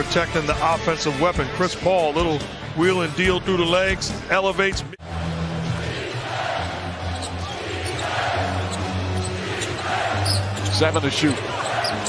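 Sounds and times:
arena crowd noise: 0:04.9 - 0:12.0.

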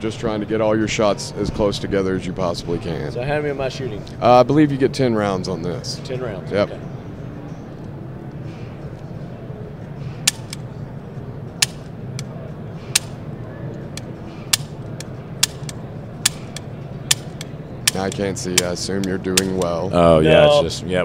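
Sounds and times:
background hubbub: 0:00.0 - 0:21.0
pistol trigger clicks: 0:10.3 - 0:10.6, 0:13.9 - 0:19.7.

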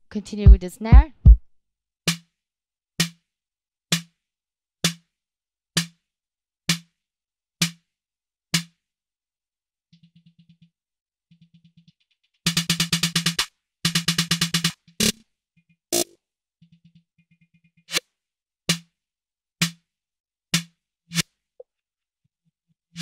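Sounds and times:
drum machine kick drum hits: 0:00.0 - 0:01.5.

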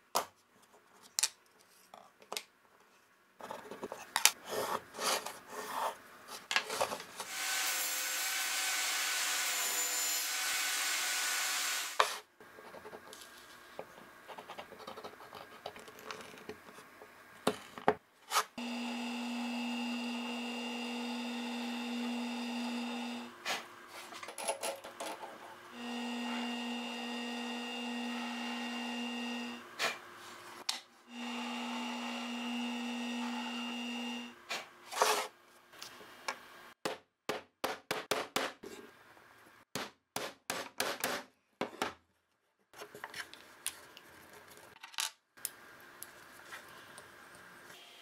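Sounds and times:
drill press motor humming: 0:18.6 - 0:23.4, 0:25.6 - 0:29.7, 0:31.1 - 0:34.4
table saw whirring: 0:18.6 - 0:23.8, 0:25.6 - 0:34.4.

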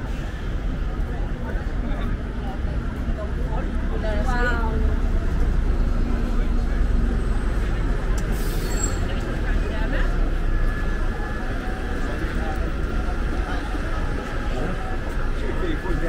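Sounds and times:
bus running: 0:00.0 - 0:16.0
city traffic rumbling: 0:00.0 - 0:16.0
passers-by voices: 0:00.0 - 0:16.0.

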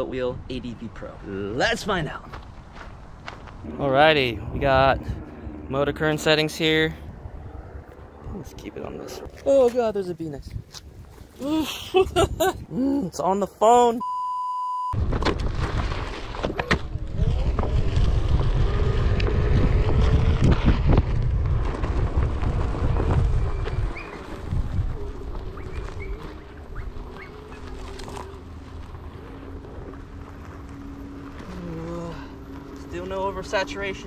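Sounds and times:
electric motor whine: 0:03.6 - 0:09.2
test-tone beep: 0:14.0 - 0:15.0
tyre rumbling over gravel: 0:15.0 - 0:33.6.

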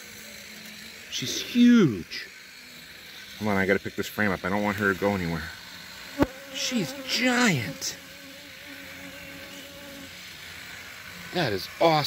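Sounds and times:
honey bees buzzing: 0:00.0 - 0:12.0.

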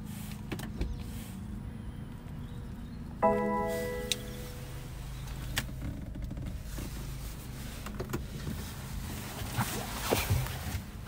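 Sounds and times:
low steady car hum: 0:00.0 - 0:11.0
car electronic chime: 0:03.2 - 0:05.0.

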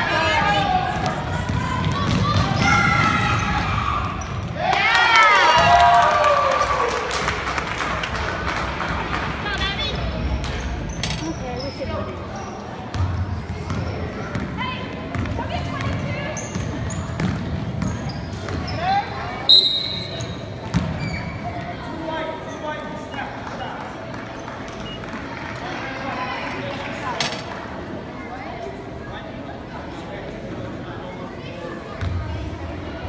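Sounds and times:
sneakers squeaking: 0:00.9 - 0:04.6, 0:10.4 - 0:21.8, 0:22.4 - 0:25.4
referee whistle blast: 0:19.5 - 0:20.3.

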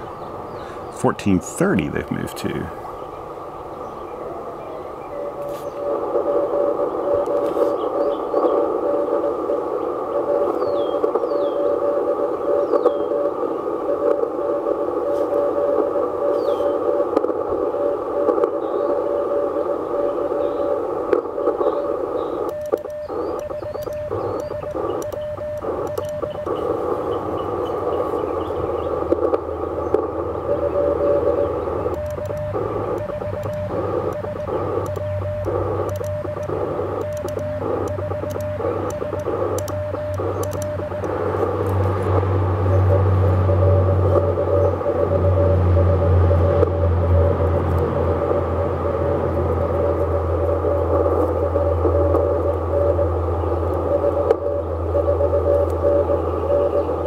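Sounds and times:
radio receiver hiss: 0:00.0 - 0:57.0
steady cw tone: 0:00.0 - 0:57.0
morse code beeping: 0:21.7 - 0:57.0.

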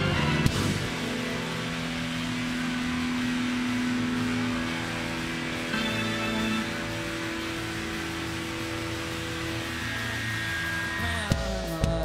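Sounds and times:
sliding bass notes: 0:00.0 - 0:12.0
sustained electronic drone: 0:00.0 - 0:12.0.

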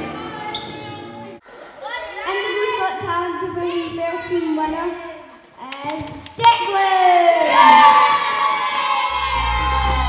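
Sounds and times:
children cheering and shouting: 0:01.6 - 0:03.0, 0:06.7 - 0:10.0.

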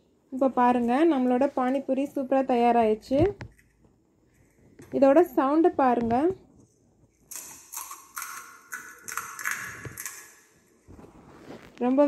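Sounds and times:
fried shell crackling and crunching: 0:07.2 - 0:10.6.

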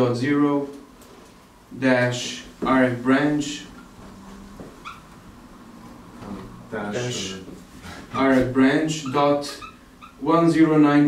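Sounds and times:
faint room hum: 0:00.0 - 0:11.0
marker squeaking on whiteboard: 0:03.5 - 0:05.1, 0:07.0 - 0:10.3.

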